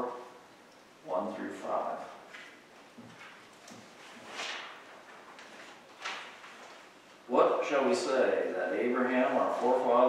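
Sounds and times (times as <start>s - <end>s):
man speaking: 1.0s - 2.2s, 7.3s - 10.0s.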